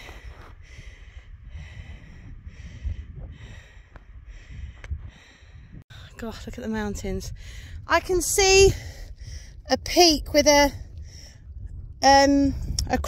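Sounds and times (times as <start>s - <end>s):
person breathing: 0.0s - 5.8s
wind rumbling on microphone: 0.0s - 13.0s.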